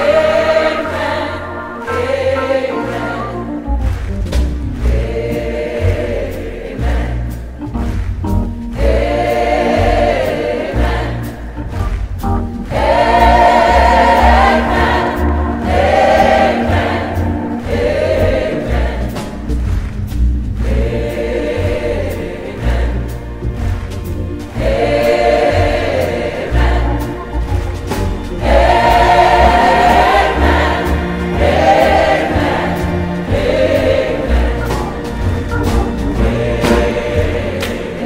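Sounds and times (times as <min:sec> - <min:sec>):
deep bass: 0:00.0 - 0:37.6
choir singing with instruments: 0:00.0 - 0:38.0.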